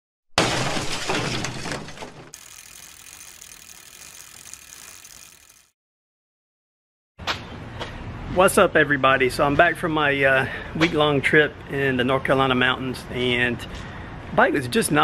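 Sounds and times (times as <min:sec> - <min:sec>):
glass shattering: 0:00.4 - 0:02.3
faint outdoor background: 0:07.2 - 0:15.0.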